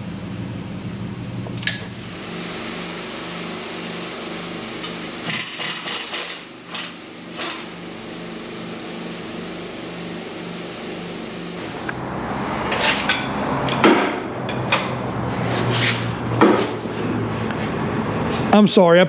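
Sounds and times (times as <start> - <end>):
shop machinery hum: 0.0 - 19.0
low pulsing drone: 1.9 - 18.3.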